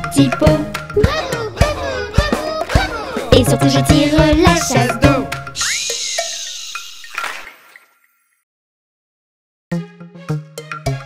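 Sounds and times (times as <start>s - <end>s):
cartoon toilet flush: 5.5s - 8.4s.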